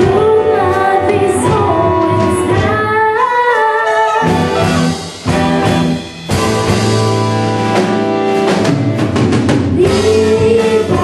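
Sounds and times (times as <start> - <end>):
girl singing into microphone: 0.0 - 4.4, 9.7 - 11.0
band accompaniment: 0.0 - 11.0.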